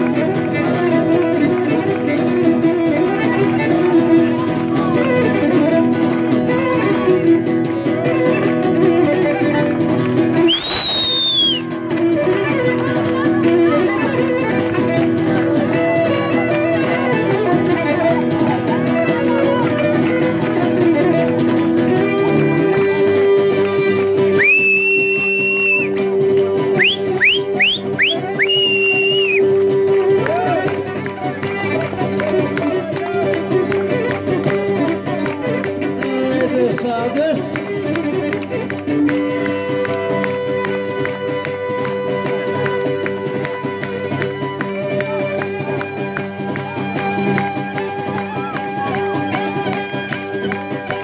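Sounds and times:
folk dance music on violin: 0.0 - 51.0
hand clapping: 0.0 - 51.0
shrill whistle: 10.5 - 11.7, 24.4 - 25.9, 26.8 - 29.4.

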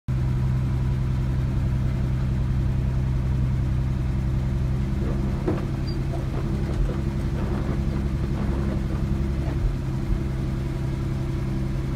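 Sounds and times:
truck engine idling: 0.1 - 11.9.

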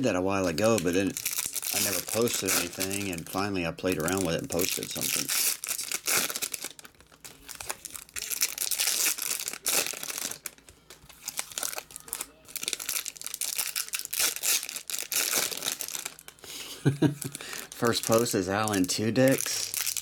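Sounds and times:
foil wrappers torn and crinkled: 0.0 - 20.0.

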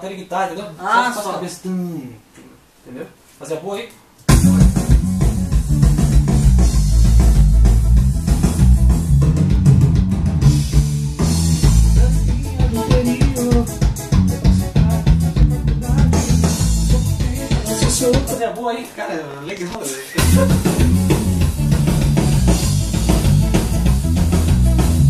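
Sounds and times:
electric bass guitar: 4.3 - 18.4, 20.2 - 25.0
band track with drum kit: 4.3 - 18.6, 20.0 - 25.0.

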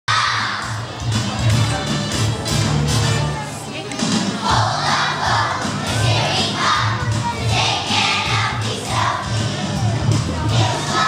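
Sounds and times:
backing track with steady beat: 0.1 - 11.0
children singing and calling out: 4.4 - 9.7, 10.5 - 11.0.

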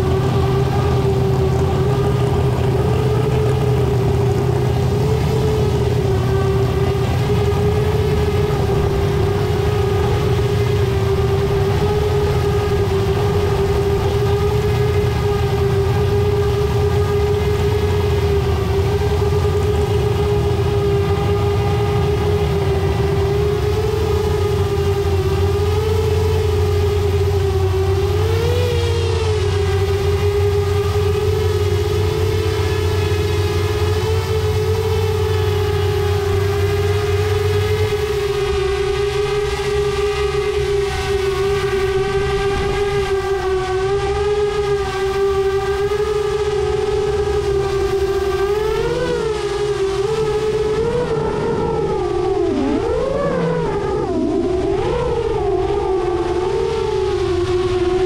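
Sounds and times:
drone motors whining: 0.0 - 58.0
low rumble: 0.0 - 58.0.

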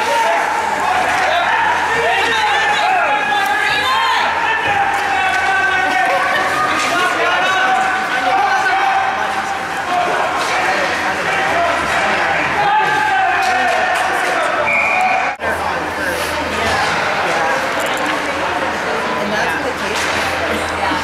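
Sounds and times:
voices shouting and chattering: 0.0 - 21.0
hockey sticks and puck clacking: 0.1 - 15.1, 19.9 - 20.4
short whistle blast: 14.7 - 15.3.

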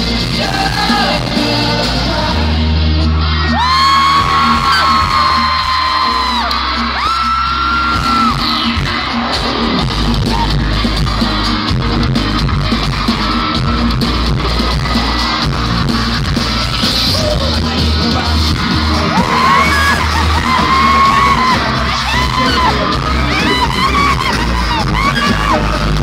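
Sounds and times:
crowd yelling: 0.0 - 26.0
loud pop music with singing: 0.0 - 26.0
high-pitched screams: 3.2 - 9.6, 18.3 - 26.0.

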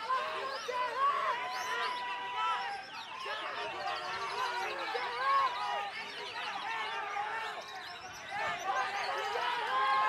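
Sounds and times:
songbirds whistling chorus: 1.2 - 9.3.

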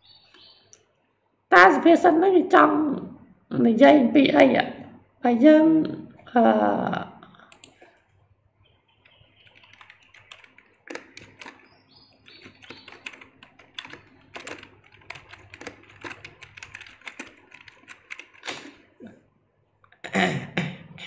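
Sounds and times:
keyboard typing: 7.5 - 8.0, 8.9 - 19.0.

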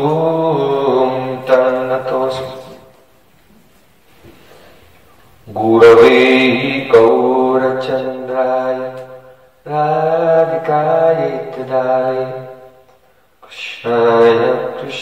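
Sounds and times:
man chanting: 0.0 - 2.9, 5.4 - 12.7, 13.4 - 15.0.

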